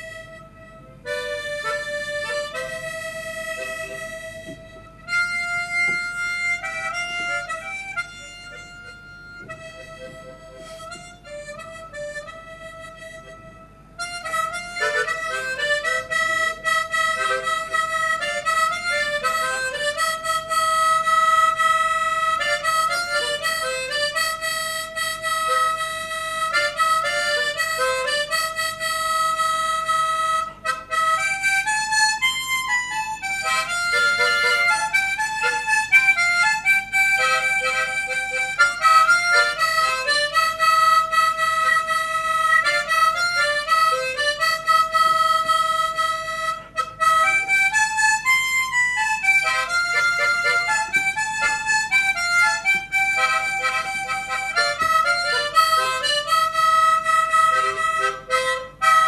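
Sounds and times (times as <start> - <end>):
harmonica melody: 0.0 - 59.0.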